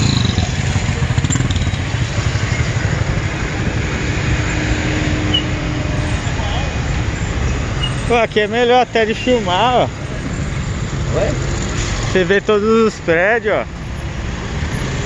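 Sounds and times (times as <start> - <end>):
motorcycles and cars passing close: 0.0 - 15.0
traffic engine rumble: 0.0 - 15.0.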